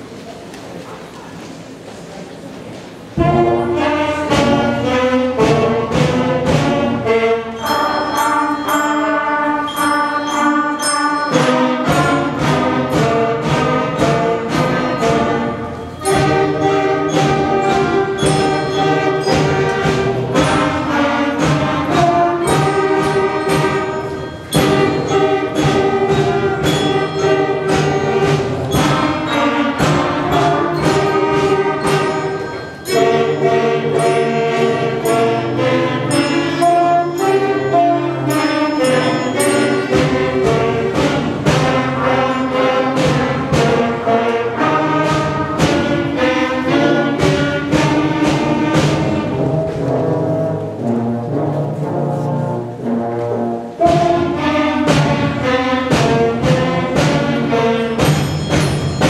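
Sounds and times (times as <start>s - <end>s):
concert band playing held chords: 3.2s - 52.1s.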